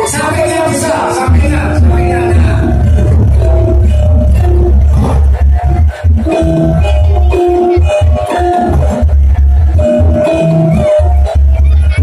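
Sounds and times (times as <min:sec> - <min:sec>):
metallophone notes: 0:00.0 - 0:12.0
booming bass: 0:01.3 - 0:12.0.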